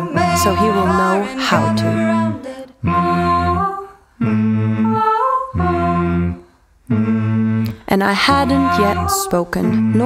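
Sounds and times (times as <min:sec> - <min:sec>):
person humming held notes: 0:00.0 - 0:10.0.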